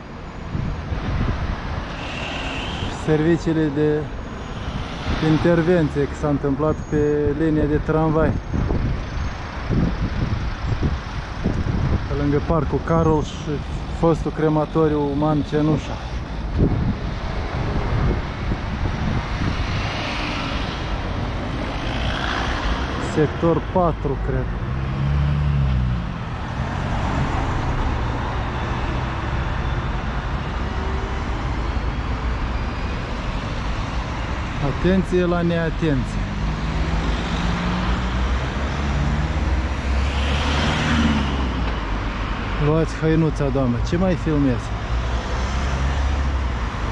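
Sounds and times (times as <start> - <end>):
road traffic rumble: 0.0 - 46.9
car passing: 19.1 - 29.7, 33.9 - 42.6.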